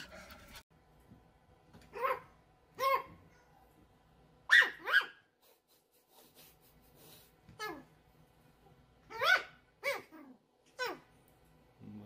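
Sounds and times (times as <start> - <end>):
puppy yipping: 1.9 - 3.5, 4.5 - 5.3, 9.1 - 11.1.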